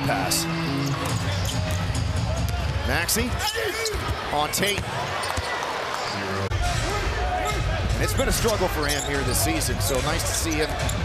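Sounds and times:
arena music: 0:00.0 - 0:03.4
crowd noise: 0:00.0 - 0:11.0.

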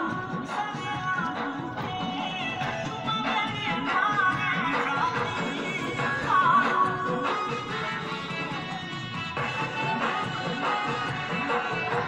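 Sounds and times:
folk music: 0:00.5 - 0:12.0.

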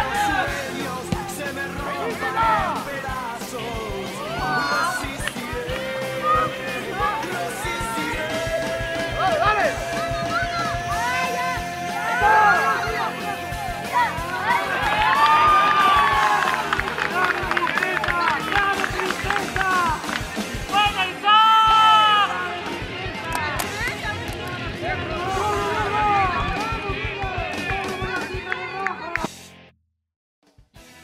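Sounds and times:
players shouting: 0:00.0 - 0:29.2
background music: 0:00.0 - 0:29.7.

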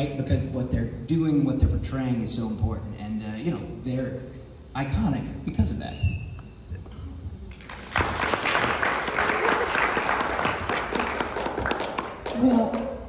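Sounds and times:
audience applauding: 0:07.5 - 0:13.0.

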